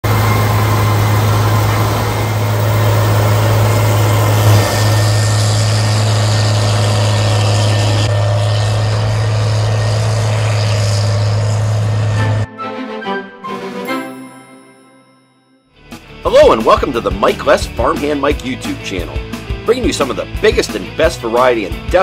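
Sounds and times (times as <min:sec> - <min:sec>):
cotton picker engine drone: 0:00.0 - 0:13.9.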